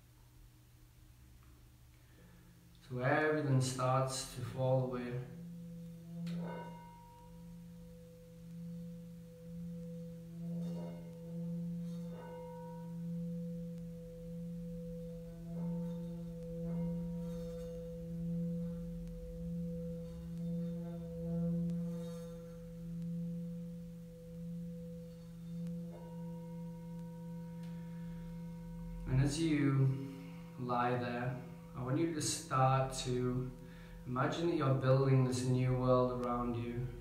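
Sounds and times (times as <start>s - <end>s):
singing bowl humming: 1.5s - 37.0s.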